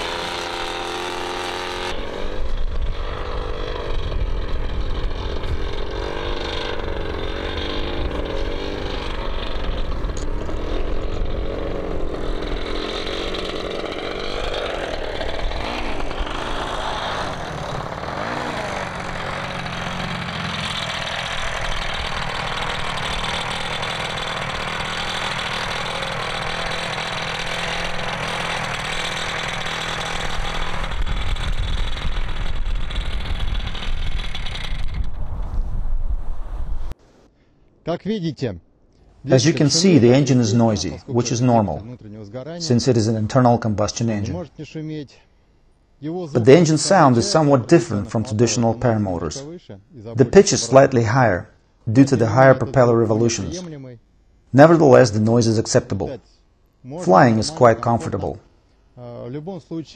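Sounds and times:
paramotor engine running: 0.0s - 35.5s, 46.4s - 49.5s, 57.0s - 58.3s.

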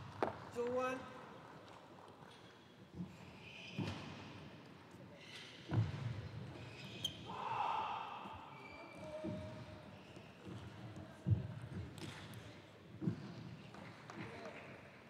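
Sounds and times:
dull thuds in a reverberant hall: 2.8s - 15.0s.

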